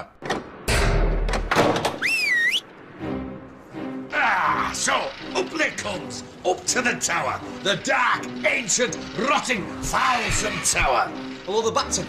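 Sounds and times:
music: 0:00.7 - 0:12.0
wavering whistle: 0:02.0 - 0:02.7.

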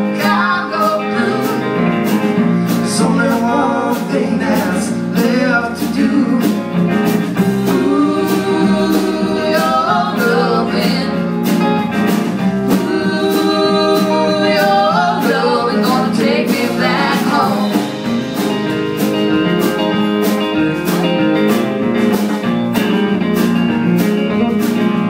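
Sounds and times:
rock band playing: 0:00.0 - 0:25.0
person singing: 0:02.7 - 0:06.8, 0:07.4 - 0:11.3, 0:12.7 - 0:18.0.

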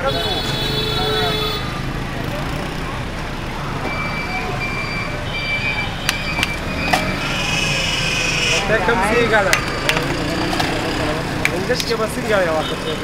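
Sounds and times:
traffic noise: 0:00.0 - 0:13.0.

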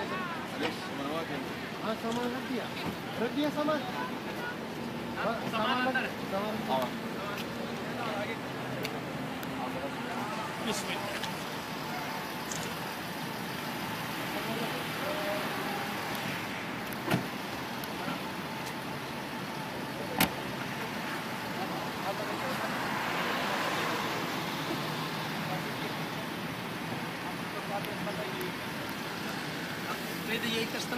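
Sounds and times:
faint voices: 0:00.0 - 0:30.9
road traffic noise: 0:00.0 - 0:30.9
car doors shutting: 0:16.8 - 0:18.2, 0:20.0 - 0:20.5
vehicle passing: 0:20.4 - 0:26.7.

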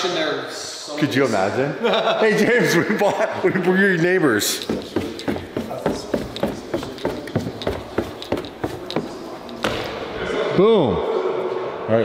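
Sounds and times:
footsteps on hard stairs: 0:04.4 - 0:09.8.

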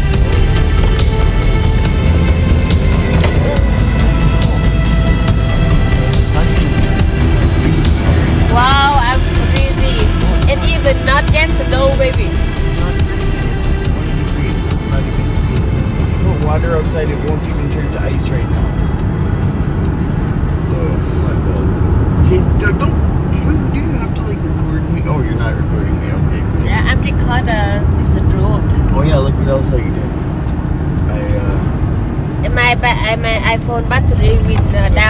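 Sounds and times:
music: 0:00.0 - 0:28.8, 0:32.4 - 0:35.0
tyres and engine rumble: 0:00.0 - 0:35.0
voices: 0:00.0 - 0:35.0.

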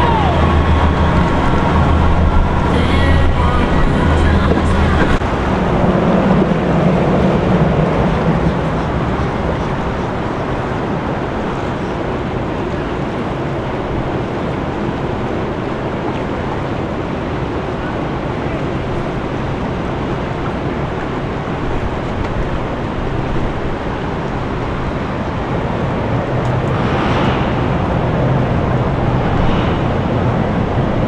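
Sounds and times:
people's voices: 0:00.0 - 0:05.2
boat engine humming: 0:00.0 - 0:11.7
water rushing along hull: 0:00.0 - 0:31.0.

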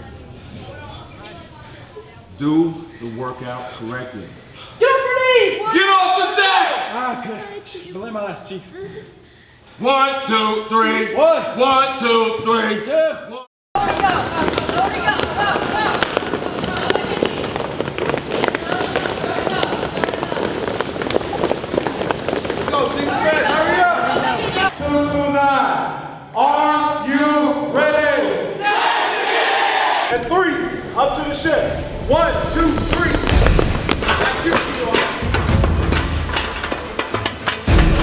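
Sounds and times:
loud shouted calls: 0:27.8 - 0:30.2
crowd shouting over one another: 0:28.6 - 0:30.1.

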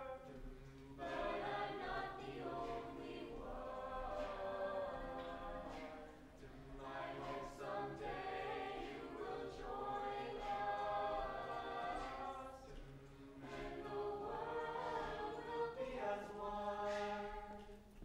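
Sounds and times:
a cappella group singing: 0:00.0 - 0:18.0.

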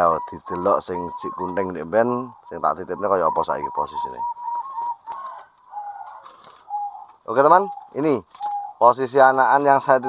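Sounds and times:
doves cooing: 0:00.0 - 0:10.0.

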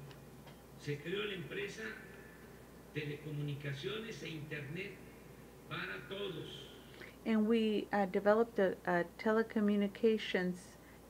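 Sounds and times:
man speaking: 0:00.8 - 0:06.9.

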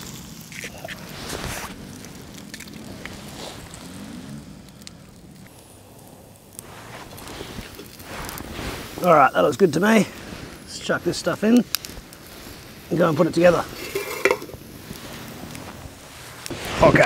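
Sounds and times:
distant off-road engines droning: 0:00.0 - 0:07.4
egg sizzling in a pan: 0:00.0 - 0:17.0
wood fire crackling: 0:00.0 - 0:17.0.

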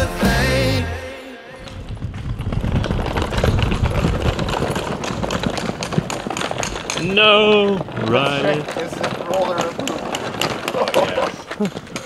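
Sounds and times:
suitcase wheels rattling on stone: 0:01.7 - 0:12.0.

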